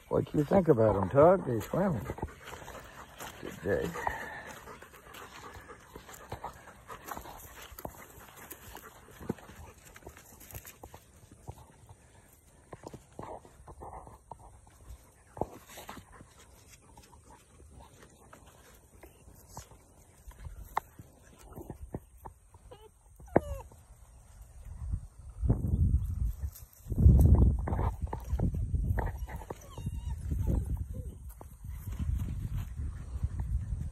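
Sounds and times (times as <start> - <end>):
low rumbling and scuffing: 0.0 - 22.3, 23.8 - 33.9
paws tapping on rubber mat: 0.6 - 12.0, 12.6 - 23.8, 27.6 - 32.3
puppy whining: 22.6 - 24.1, 29.0 - 31.5.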